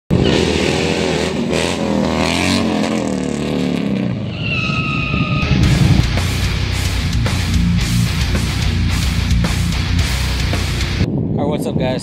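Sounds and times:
motorcycle engine revving: 0:00.1 - 0:04.3, 0:05.2 - 0:11.0
music: 0:05.5 - 0:11.1.

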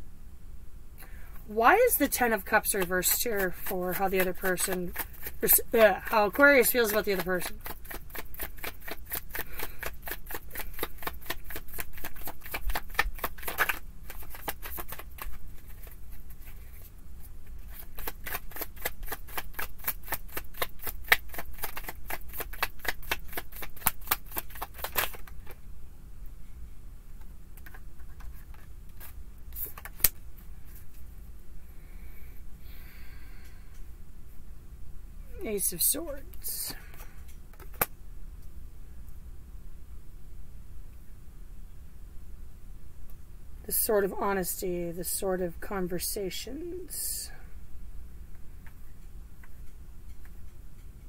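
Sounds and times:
cards being shuffled: 0:02.2 - 0:25.6, 0:27.2 - 0:31.1, 0:37.5 - 0:37.9.

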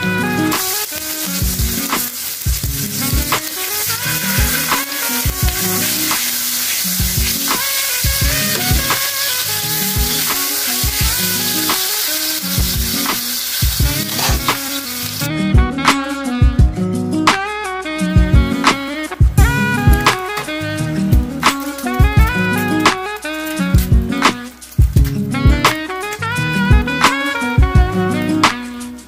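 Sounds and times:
meat sizzling in oil: 0:00.0 - 0:15.3, 0:18.5 - 0:29.0
background music with beat: 0:00.0 - 0:29.0.

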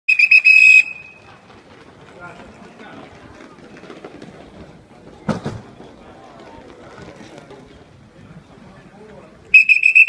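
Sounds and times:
shrill whistle blasts: 0:00.1 - 0:01.2, 0:09.5 - 0:10.0.

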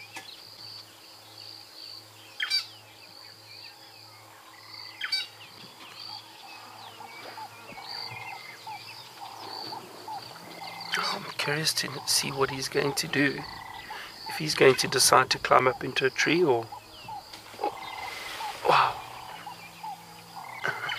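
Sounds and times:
small birds chirping: 0:00.0 - 0:20.9
high-pitched insect trill: 0:00.4 - 0:20.9
loud sharp bird calls: 0:02.4 - 0:03.5, 0:04.1 - 0:20.9.

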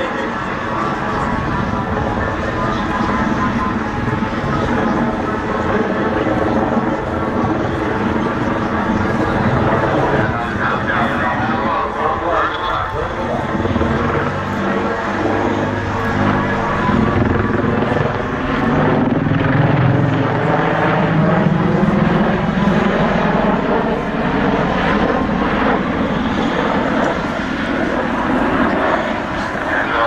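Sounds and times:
helicopter rotor and engine drone: 0:00.0 - 0:30.0.

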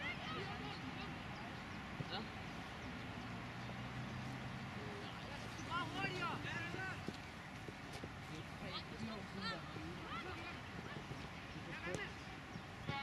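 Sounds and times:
distant shouts and voices: 0:00.0 - 0:13.0
outdoor ambience: 0:00.0 - 0:13.0.

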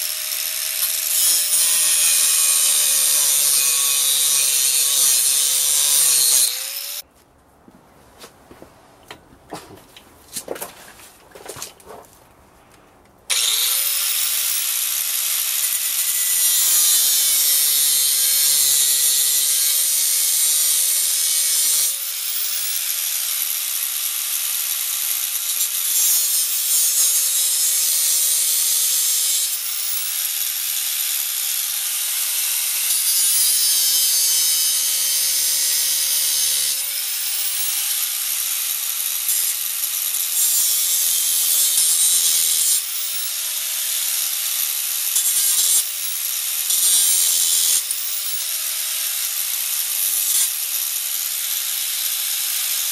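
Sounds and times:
angle grinder grinding steel: 0:00.0 - 0:07.1, 0:13.3 - 0:52.9.

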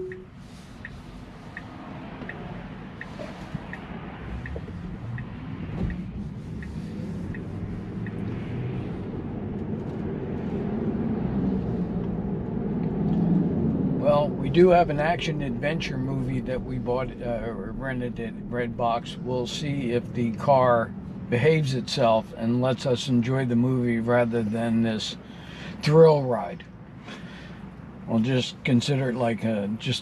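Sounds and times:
turn signal ticking: 0:00.0 - 0:09.8
road and tyre noise: 0:00.0 - 0:30.0.

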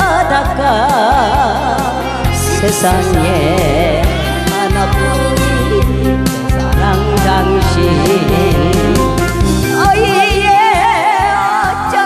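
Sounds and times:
amplified backing music: 0:00.0 - 0:12.0
woman singing into a microphone: 0:00.0 - 0:12.0.

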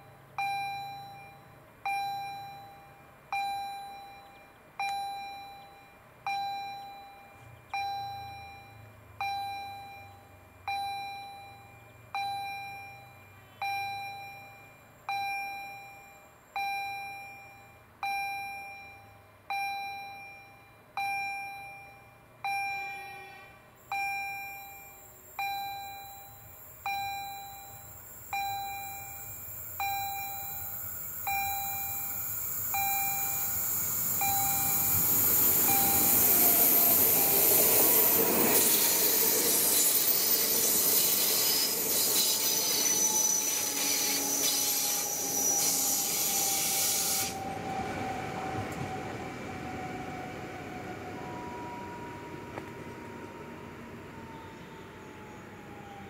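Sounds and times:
level crossing warning bell: 0:00.0 - 0:56.0
approaching electric train: 0:27.8 - 0:56.0.

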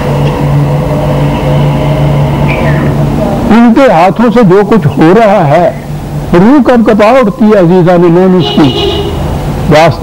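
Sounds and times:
tape hiss: 0:00.0 - 0:08.6
low electrical hum: 0:00.0 - 0:10.0
voice: 0:02.6 - 0:08.8, 0:09.7 - 0:10.0.

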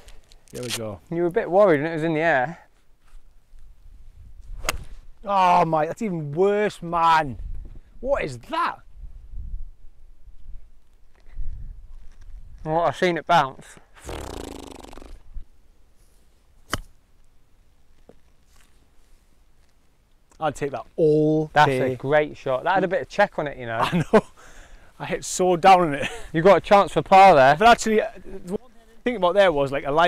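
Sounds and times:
golf club striking ball: 0:04.6 - 0:05.0, 0:16.7 - 0:17.0.

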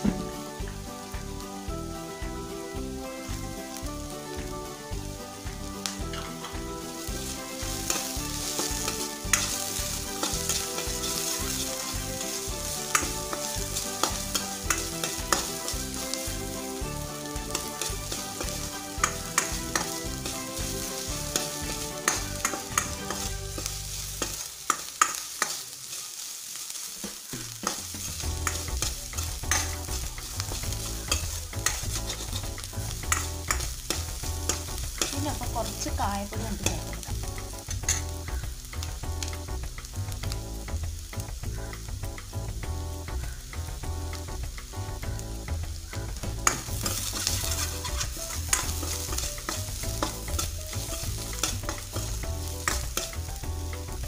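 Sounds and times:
food sizzling in hot oil: 0:00.0 - 0:54.0
spoon scraping a metal pan: 0:07.4 - 0:16.1, 0:17.5 - 0:25.6, 0:46.4 - 0:53.1.

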